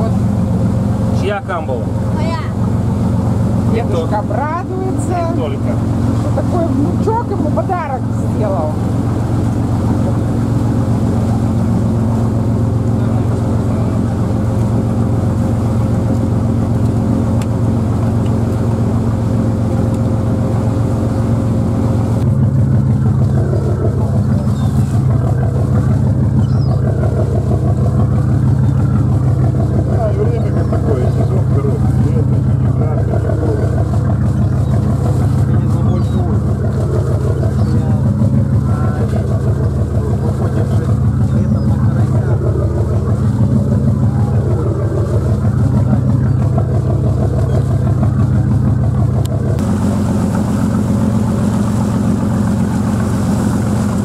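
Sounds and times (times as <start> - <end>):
boat engine drone: 0.0 - 54.0
sea rushing past hull: 0.0 - 54.0.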